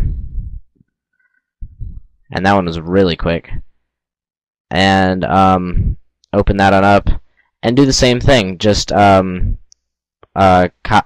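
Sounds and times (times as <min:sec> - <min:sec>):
short low sound: 0:00.0 - 0:00.6
man speaking: 0:02.3 - 0:03.7, 0:04.7 - 0:09.6, 0:10.4 - 0:11.0.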